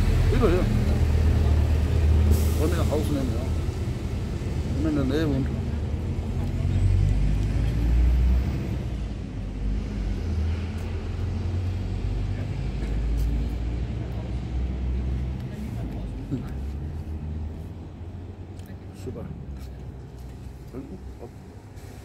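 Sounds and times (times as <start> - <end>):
road traffic noise: 0.0 - 22.0.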